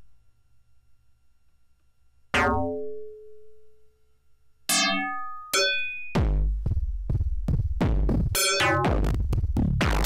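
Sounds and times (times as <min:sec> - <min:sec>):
throbbing synth bass pulse: 0:08.8 - 0:10.0.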